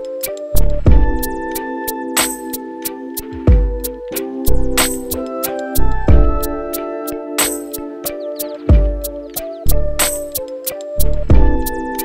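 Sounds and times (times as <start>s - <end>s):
sustained synth notes: 0.6s - 12.0s
deep drum beat: 0.9s - 1.3s, 3.5s - 4.0s, 6.1s - 6.6s, 8.7s - 9.2s, 11.3s - 11.7s.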